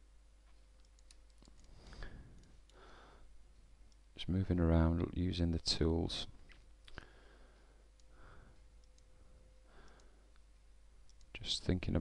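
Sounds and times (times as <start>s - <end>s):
faint steady hum: 0.0s - 12.0s
computer mouse clicks: 0.8s - 2.8s, 8.8s - 9.2s, 9.8s - 11.4s
soft breath: 1.6s - 3.4s, 6.9s - 10.4s.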